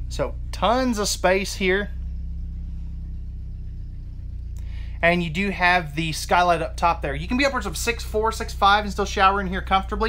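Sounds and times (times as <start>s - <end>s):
vehicle engine rumble: 0.0s - 10.0s.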